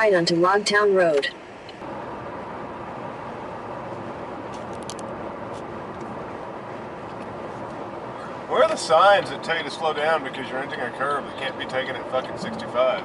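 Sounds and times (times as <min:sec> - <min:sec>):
road and tyre noise in car: 0:00.0 - 0:13.0.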